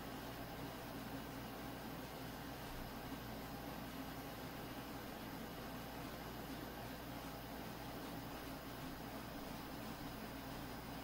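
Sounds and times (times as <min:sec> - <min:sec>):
faint low hum: 0:00.0 - 0:11.0
steady background hiss: 0:00.0 - 0:11.0.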